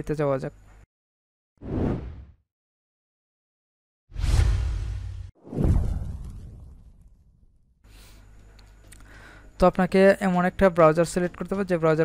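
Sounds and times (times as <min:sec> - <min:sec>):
deep whooshes: 0:04.1 - 0:07.1.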